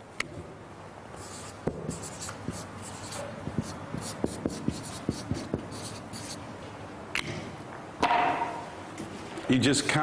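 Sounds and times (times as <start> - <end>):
marker scratching on whiteboard: 1.2 - 6.4.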